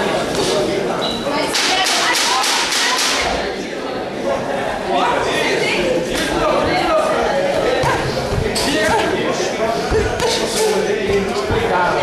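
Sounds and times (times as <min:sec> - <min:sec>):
voices in large hall: 0:00.0 - 0:12.0.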